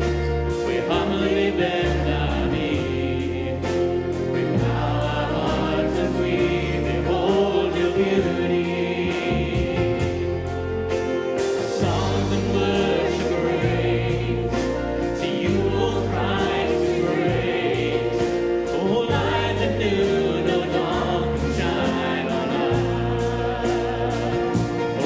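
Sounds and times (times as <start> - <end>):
band of strings guitars and piano: 0.0 - 25.0
bass notes: 0.0 - 25.0
congregation singing a hymn: 0.0 - 25.0.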